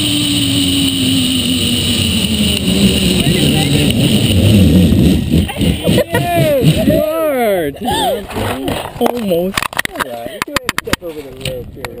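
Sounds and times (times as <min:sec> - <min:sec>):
person's drawn-out laughs or cries: 0:05.4 - 0:07.1, 0:07.8 - 0:08.6.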